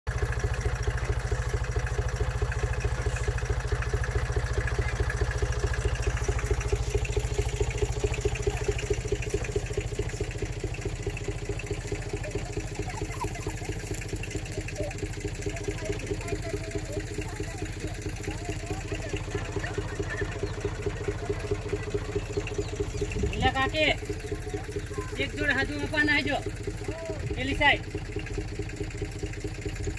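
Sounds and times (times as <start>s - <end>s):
tractor diesel engine running: 0.1s - 29.9s.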